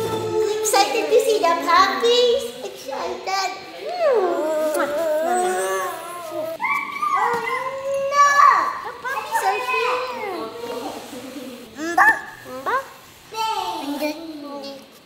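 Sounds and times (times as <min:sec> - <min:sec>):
children babbling and squealing: 0:02.7 - 0:15.0
dog yelping: 0:04.0 - 0:07.9, 0:11.8 - 0:12.9.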